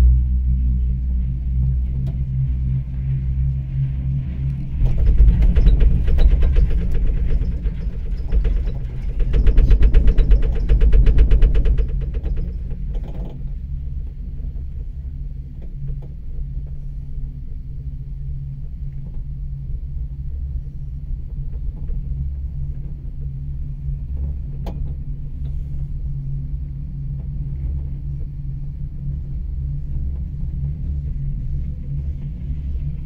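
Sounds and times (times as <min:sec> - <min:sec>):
cable car cabin humming: 0:00.0 - 0:33.0
wheels rattling over rollers: 0:04.8 - 0:13.4.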